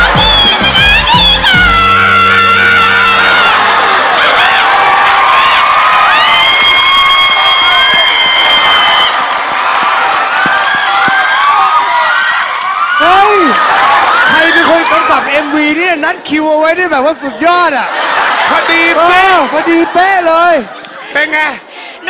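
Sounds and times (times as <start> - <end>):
karaoke backing track: 0.0 - 3.6
audience cheering and shouting: 0.0 - 21.5.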